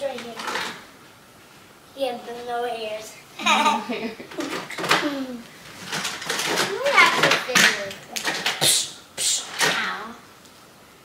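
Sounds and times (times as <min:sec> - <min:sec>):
people laughing: 0:03.4 - 0:04.5
voices: 0:06.5 - 0:10.2.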